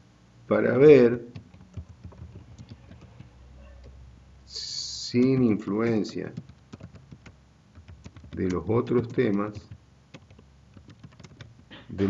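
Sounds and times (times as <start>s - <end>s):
keyboard typing clicks: 1.3s - 4.0s, 5.2s - 11.7s.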